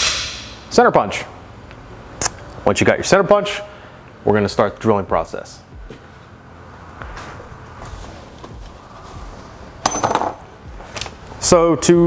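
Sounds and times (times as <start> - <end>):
handling and shuffling noise: 7.1 - 9.7, 10.8 - 11.4
metallic clink: 9.8 - 10.5.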